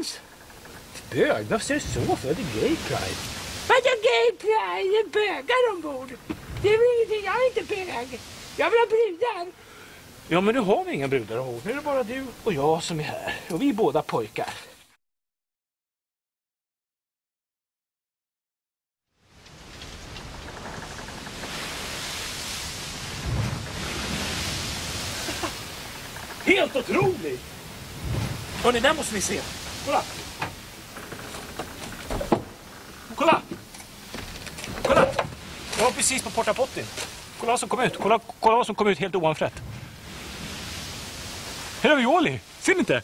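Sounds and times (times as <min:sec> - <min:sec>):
steady rushing noise: 0:00.0 - 0:13.8, 0:19.5 - 0:38.0, 0:38.8 - 0:43.0
steady hiss: 0:00.0 - 0:14.9, 0:19.2 - 0:43.0
man speaking: 0:01.0 - 0:03.3, 0:10.3 - 0:14.7, 0:26.4 - 0:27.5, 0:28.6 - 0:30.3, 0:33.1 - 0:33.6, 0:34.8 - 0:39.6, 0:41.8 - 0:43.0.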